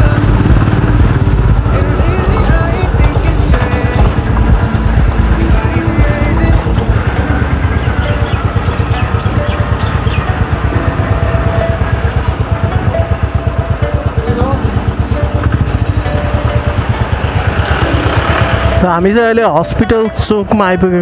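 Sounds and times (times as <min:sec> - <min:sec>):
background music: 0:00.0 - 0:21.0
motorcycle engine running: 0:00.0 - 0:21.0.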